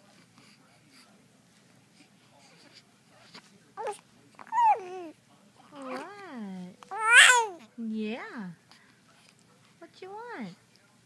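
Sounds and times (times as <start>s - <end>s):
baby cooing and squealing: 4.5s - 5.1s, 6.9s - 7.6s.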